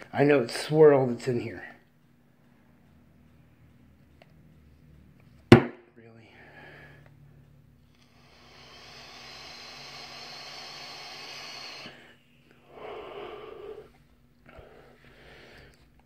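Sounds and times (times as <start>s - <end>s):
airy hiss of electronic cigarette: 7.9s - 13.9s
vapour blown out: 7.9s - 13.9s.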